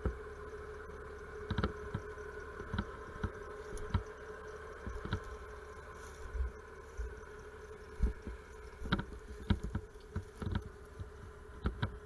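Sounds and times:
diesel engine droning: 0.0s - 12.0s
machine knocking and clanking: 4.8s - 5.4s, 7.9s - 12.0s.

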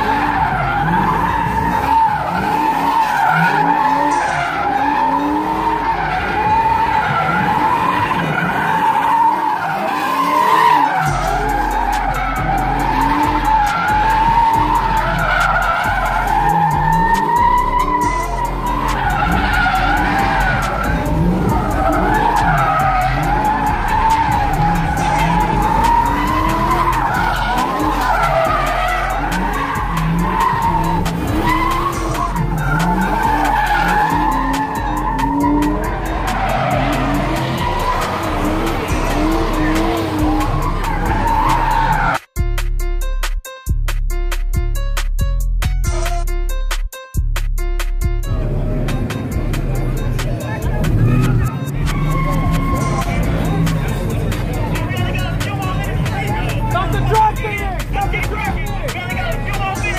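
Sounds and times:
car engine revving: 0.0s - 42.3s, 48.2s - 59.9s
tire squealing: 0.0s - 42.3s, 48.2s - 59.9s.

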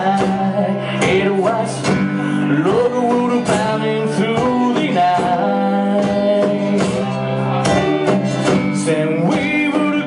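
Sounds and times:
drum beat with sticks: 0.0s - 10.0s
lap slide guitar: 0.0s - 10.0s.

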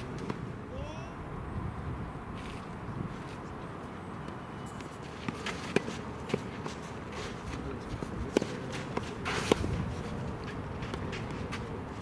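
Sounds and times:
shoes scuffing on clay: 4.7s - 12.0s
tennis ball struck by racket: 8.0s - 9.8s.

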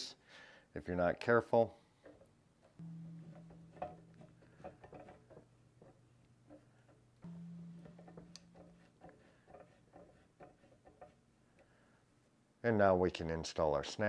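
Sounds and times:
faint low hum: 2.6s - 12.7s.

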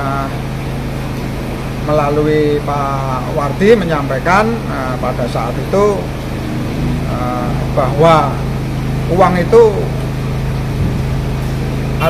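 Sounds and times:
constant hiss: 0.0s - 12.0s
low mechanical hum: 0.0s - 12.0s.

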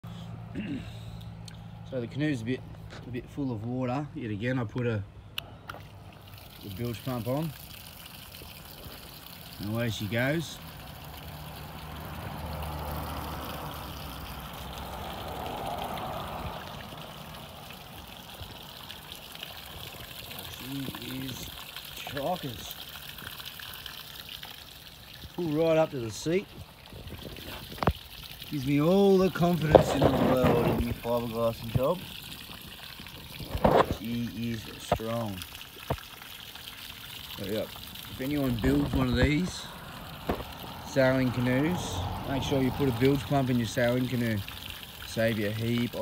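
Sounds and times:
pump humming: 5.5s - 46.0s
water splashing onto grass: 5.6s - 46.0s.

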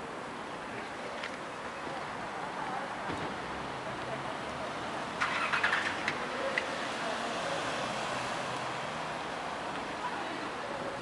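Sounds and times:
steady traffic noise: 0.0s - 11.0s.

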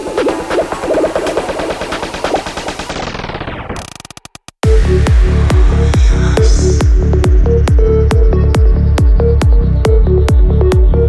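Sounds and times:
electronic dance music stuttering hits: 0.0s - 11.0s.

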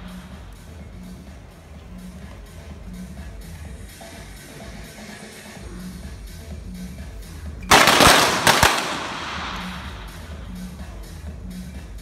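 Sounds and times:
pistol shots in indoor range: 7.7s - 10.4s.

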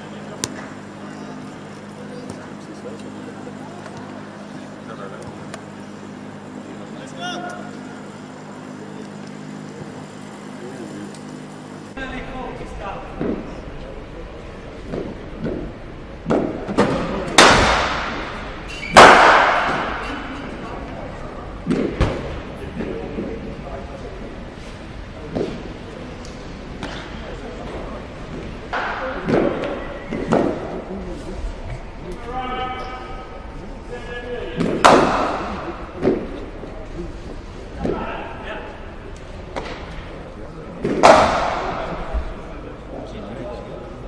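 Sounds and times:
steady low hum: 0.0s - 44.0s
sharp crack of cricket bat: 17.3s - 20.0s, 40.8s - 42.0s
cricket bat striking ball: 19.0s - 20.2s, 34.6s - 36.3s, 40.8s - 42.1s.

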